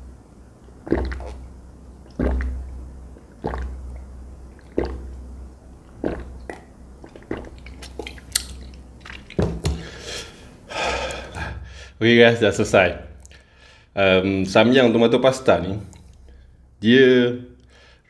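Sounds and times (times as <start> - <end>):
person gulping a drink: 0.6 - 11.5
breath out: 9.8 - 12.0.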